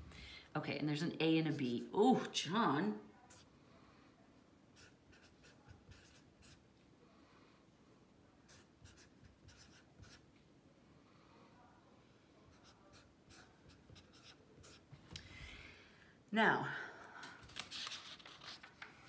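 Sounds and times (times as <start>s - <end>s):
felt-tip pen scratching on paper: 4.8s - 6.6s, 8.5s - 10.2s, 12.5s - 14.9s.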